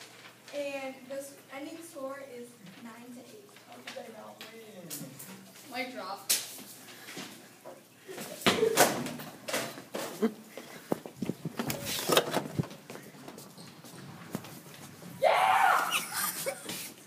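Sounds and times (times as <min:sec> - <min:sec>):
person shouting: 0:15.2 - 0:16.1.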